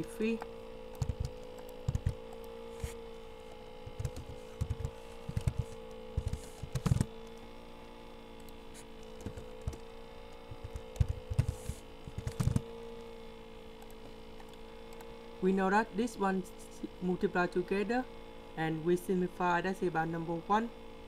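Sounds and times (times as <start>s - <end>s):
steady electrical hum: 0.0s - 21.0s
computer keyboard typing: 0.9s - 2.5s, 3.8s - 7.4s, 8.4s - 12.7s.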